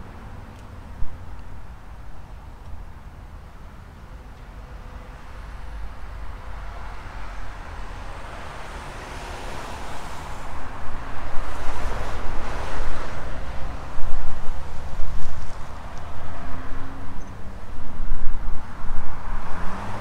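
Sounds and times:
wind rumble on microphone: 0.0 - 3.2, 9.6 - 20.0
road traffic passing: 0.0 - 20.0.

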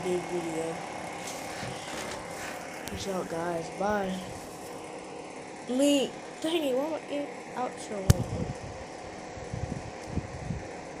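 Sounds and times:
faint background hum: 0.0 - 11.0.

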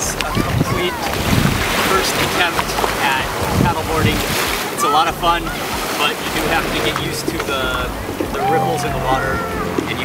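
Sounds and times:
small waves washing ashore: 0.0 - 10.0
wind buffeting microphone: 0.0 - 10.0.

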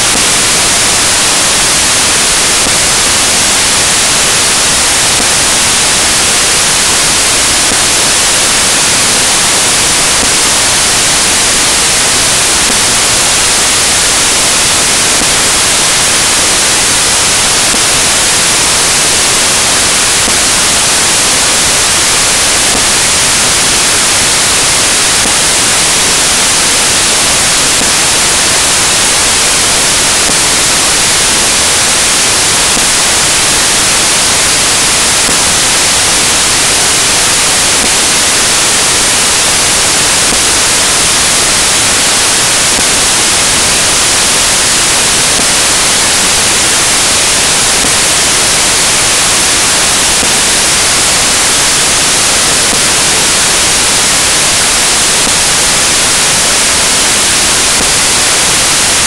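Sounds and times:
loud steady static hiss: 0.0 - 59.0.

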